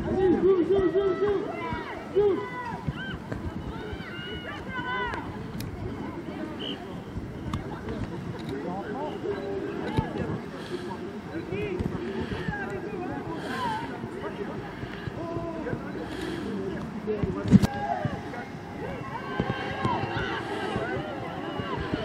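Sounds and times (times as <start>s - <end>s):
distant people shouting: 17.6s - 22.0s.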